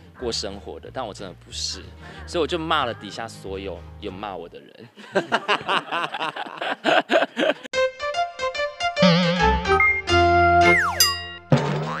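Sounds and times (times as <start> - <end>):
springy boing: 9.0 - 9.6
falling whistle-like glide: 10.6 - 11.0.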